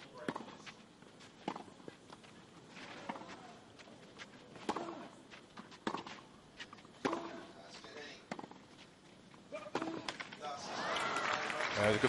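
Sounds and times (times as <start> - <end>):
racquet hitting tennis ball: 4.6 - 8.6, 9.5 - 10.3.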